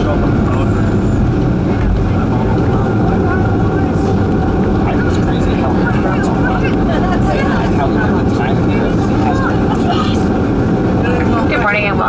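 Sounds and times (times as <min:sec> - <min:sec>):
jet cabin rumbling roar: 0:00.0 - 0:12.0.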